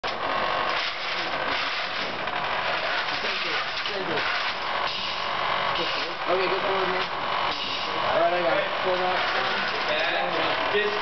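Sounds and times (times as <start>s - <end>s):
robot electric motors whirring: 0.0s - 11.0s.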